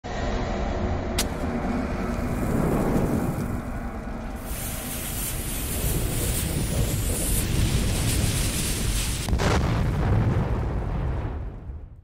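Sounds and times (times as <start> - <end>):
low rumble: 0.0 - 12.0
fuse hissing and sparking: 2.1 - 9.4.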